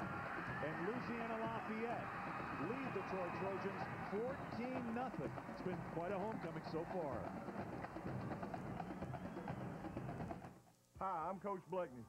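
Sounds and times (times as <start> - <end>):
drum-led music: 0.0 - 10.6
stadium crowd noise: 0.0 - 11.6.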